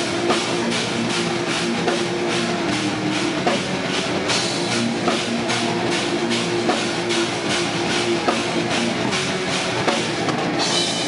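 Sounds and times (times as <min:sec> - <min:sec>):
bass low notes: 0:00.0 - 0:10.8
distorted guitars: 0:00.0 - 0:11.0
drums: 0:00.0 - 0:11.0.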